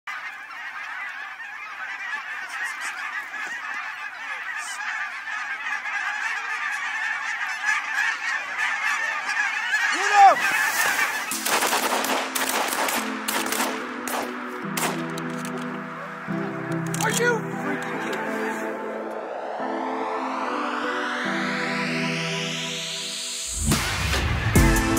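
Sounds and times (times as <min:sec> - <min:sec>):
geese honking: 0:00.1 - 0:24.9
music: 0:04.9 - 0:24.9.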